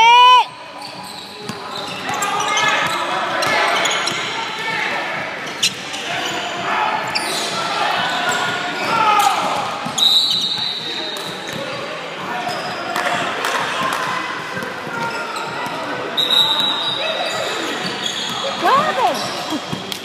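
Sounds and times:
basketball bouncing on court: 17.4s - 20.0s.

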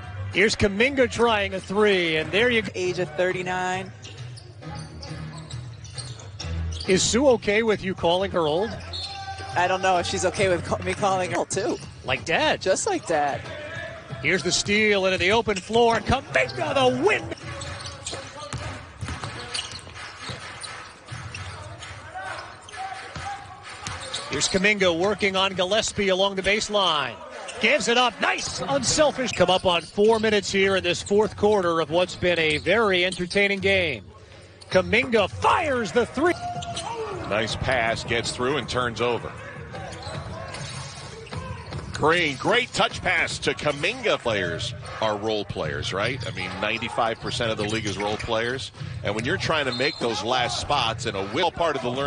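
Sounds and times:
basketball bouncing: 15.2s - 22.0s.

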